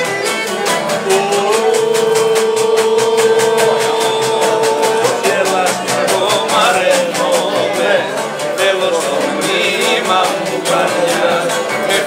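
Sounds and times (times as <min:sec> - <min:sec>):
lute strumming: 0:00.0 - 0:12.0.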